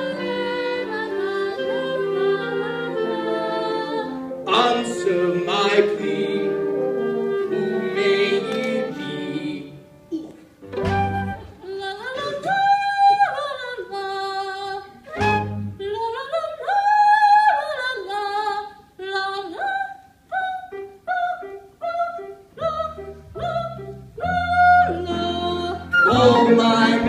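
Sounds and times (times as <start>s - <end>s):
operatic singing voice with vibrato: 0.0s - 9.8s, 11.5s - 27.0s
pit orchestra: 0.0s - 12.7s, 14.9s - 15.9s, 22.2s - 27.0s.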